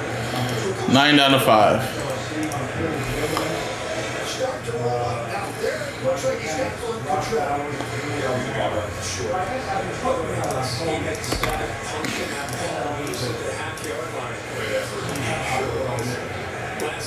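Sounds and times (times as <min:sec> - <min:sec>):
man talking: 0:00.6 - 0:16.3.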